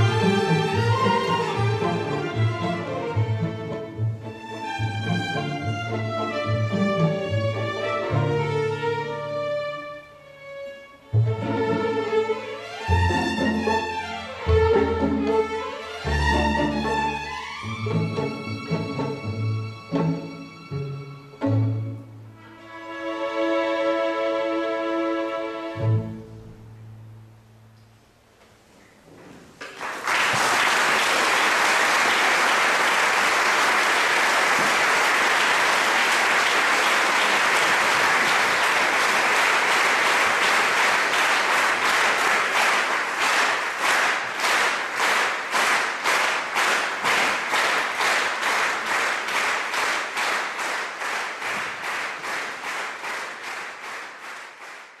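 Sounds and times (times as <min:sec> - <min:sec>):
audience applauding: 0:00.0 - 0:03.2, 0:29.6 - 0:55.0
rhythmic clapping in unison: 0:00.0 - 0:09.0, 0:11.4 - 0:20.6, 0:29.6 - 0:55.0.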